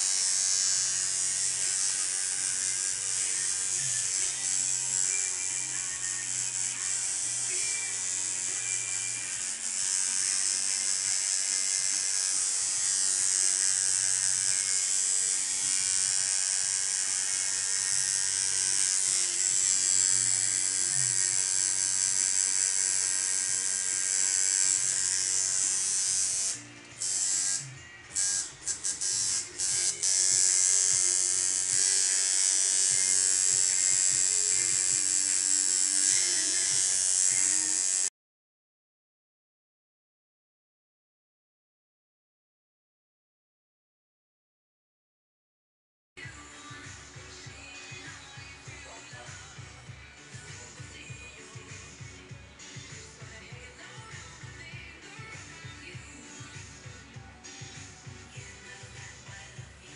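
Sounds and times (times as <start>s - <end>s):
tattoo machine buzzing: 0.0s - 38.1s.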